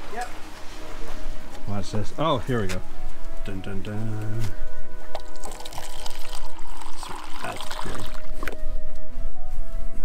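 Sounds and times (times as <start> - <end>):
background music: 0.0 - 10.0
liquid trickling while poured: 5.2 - 8.5.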